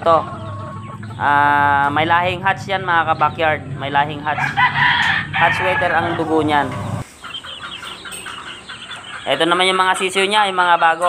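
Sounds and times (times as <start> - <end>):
chicks peeping: 0.0 - 11.0.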